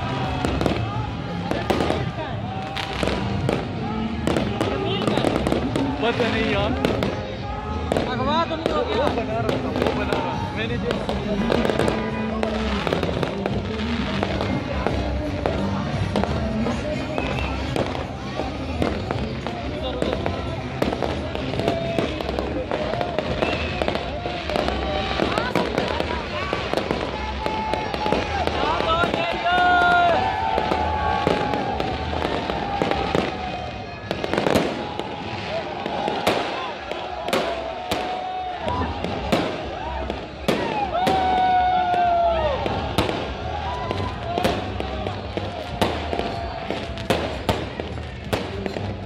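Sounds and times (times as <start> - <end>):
crowd chatter: 0.0 - 49.0
fireworks bursting with bangs: 0.0 - 49.0.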